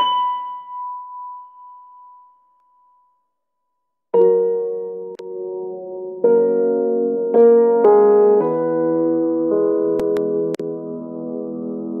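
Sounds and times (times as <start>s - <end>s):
high piano note ringing: 0.0s - 2.5s.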